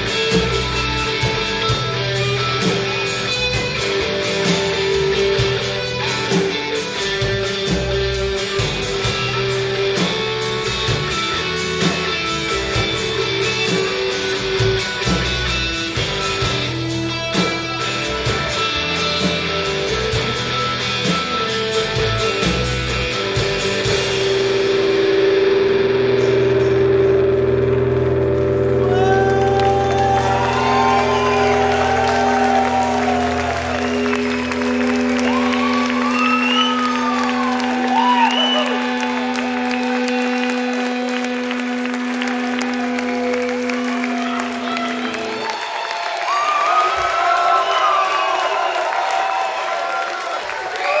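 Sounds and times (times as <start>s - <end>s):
audience cheering and applauding: 0.0s - 22.5s, 27.4s - 51.0s
rock band holding a chord: 0.0s - 50.9s.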